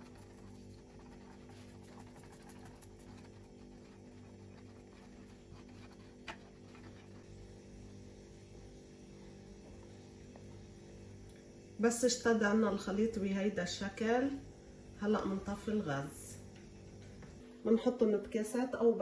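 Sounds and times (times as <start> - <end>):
whisking in a saucepan: 0.0 - 8.6
low steady hum: 0.0 - 19.0.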